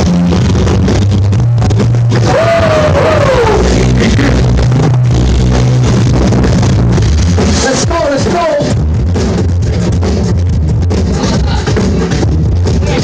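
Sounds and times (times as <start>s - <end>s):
loud battle music with heavy bass: 0.0s - 13.0s.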